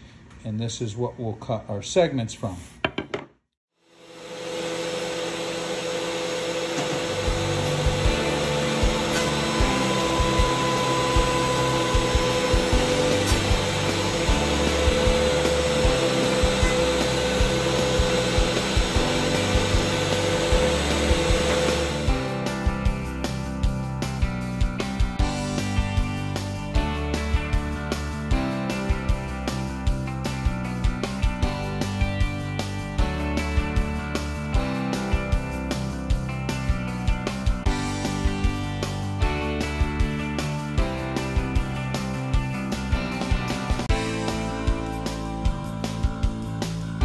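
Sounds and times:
thickness planer motor whine: 4.0 - 22.5
background music with a beat: 7.3 - 47.0.

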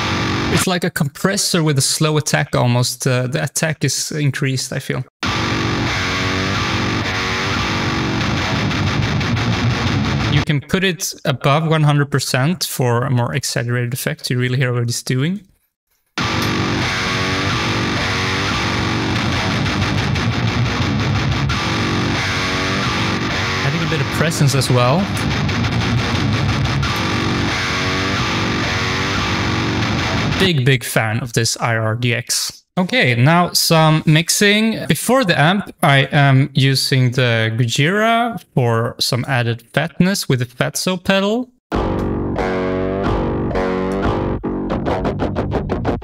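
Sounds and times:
distorted metal guitar riff: 0.0 - 0.7, 5.2 - 10.5, 16.2 - 30.6, 41.7 - 46.0.

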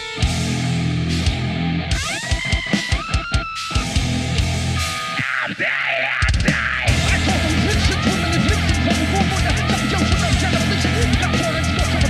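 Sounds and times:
heavy metal band playing: 0.0 - 12.0
high guitar lead sliding up: 0.0 - 12.0.

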